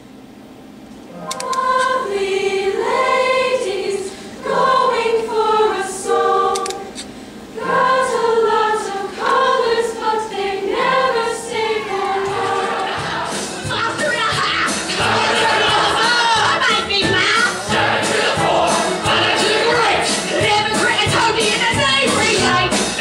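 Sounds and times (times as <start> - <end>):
choir singing in chorus: 1.1 - 23.0.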